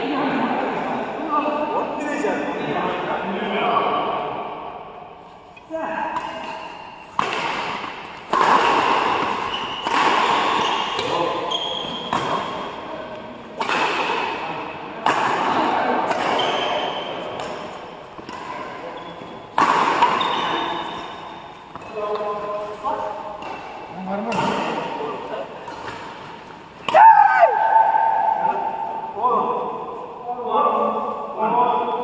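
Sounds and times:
rackets striking shuttlecock: 0:06.1 - 0:12.6, 0:13.6 - 0:14.4.

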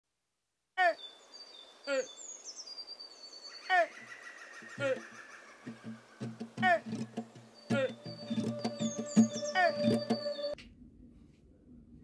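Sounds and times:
high bird whistling: 0:07.0 - 0:10.6.

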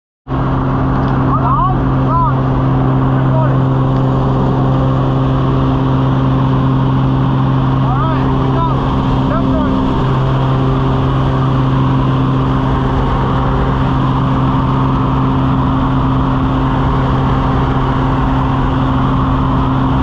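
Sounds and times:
plane engine and propeller drone: 0:00.3 - 0:20.0.

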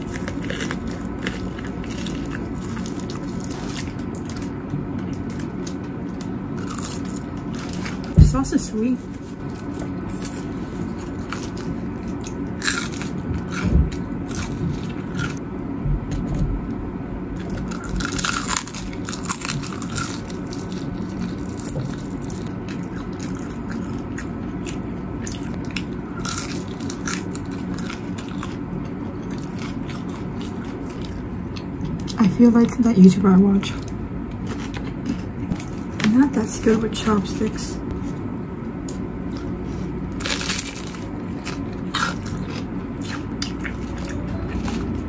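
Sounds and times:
fried chicken crunching: 0:00.0 - 0:08.2, 0:09.1 - 0:15.4, 0:17.4 - 0:32.2, 0:33.8 - 0:36.2, 0:39.3 - 0:45.0
low background hum: 0:00.0 - 0:45.0.

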